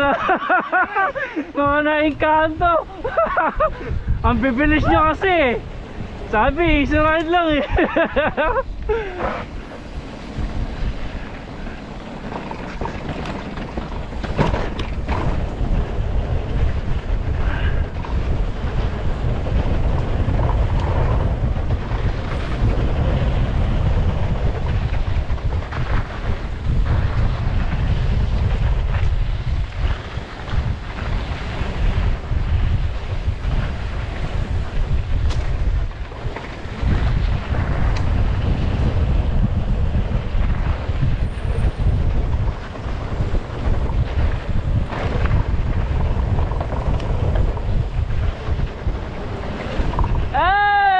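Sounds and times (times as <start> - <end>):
wind buffeting microphone: 0.0 - 50.9
bike knocks and rattles: 6.2 - 50.9.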